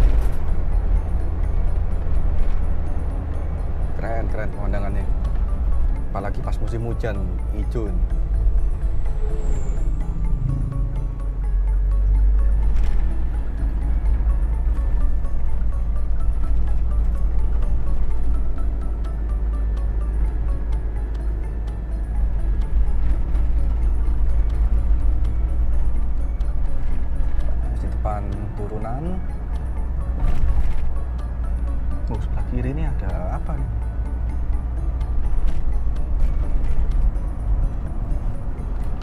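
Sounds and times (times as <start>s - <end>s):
car engine and tyres rumbling: 0.0s - 39.0s
music playing: 0.0s - 39.0s.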